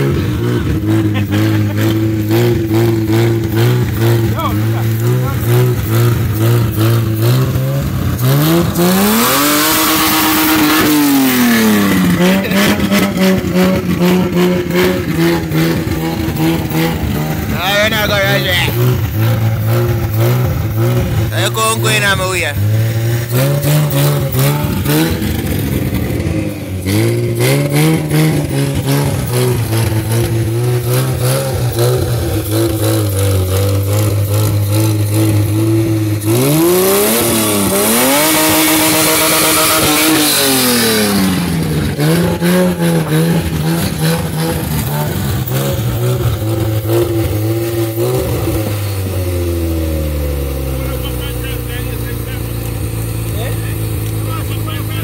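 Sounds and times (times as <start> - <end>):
engine revving and idling: 0.0 - 55.0.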